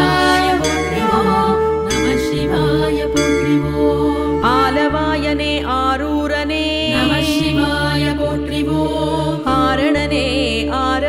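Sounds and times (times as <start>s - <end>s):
bright shimmer: 0.0s - 5.0s
melodic line: 0.0s - 5.9s, 6.8s - 7.9s
low drone: 0.0s - 10.2s
devotional music: 0.0s - 11.0s.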